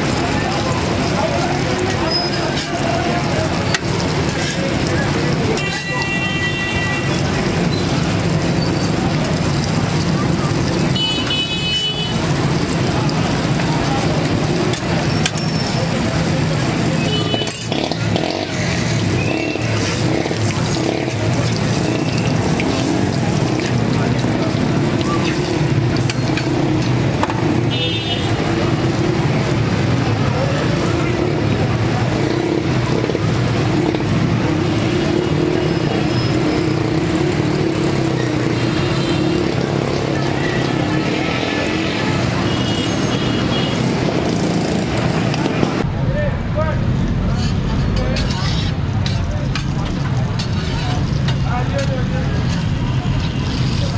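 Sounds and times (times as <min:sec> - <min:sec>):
people's voices: 0:00.0 - 0:53.9
street traffic: 0:00.0 - 0:53.9.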